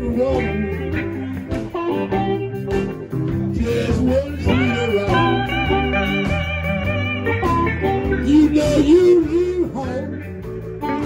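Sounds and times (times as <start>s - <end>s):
electric blues band playing: 0.0s - 11.0s
electric guitar bends: 0.0s - 11.0s.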